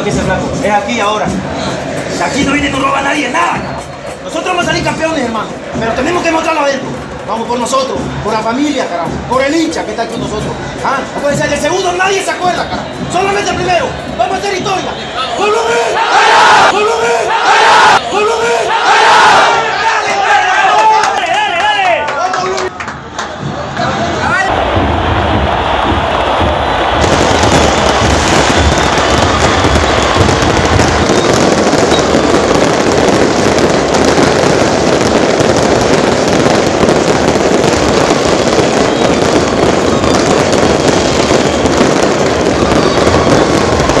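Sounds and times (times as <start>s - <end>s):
crowd voices: 0.0s - 44.0s
fireworks crackling: 24.5s - 44.0s.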